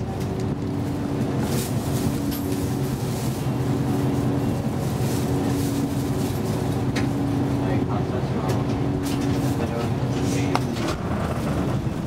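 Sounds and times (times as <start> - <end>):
bus clicks and rattles: 0.0 - 12.0
bus diesel engine humming: 0.0 - 12.0.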